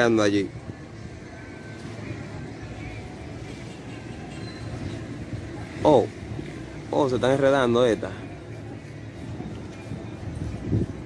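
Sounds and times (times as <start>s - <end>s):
faint voices: 0.0s - 11.0s
outdoor background noise: 0.0s - 11.0s.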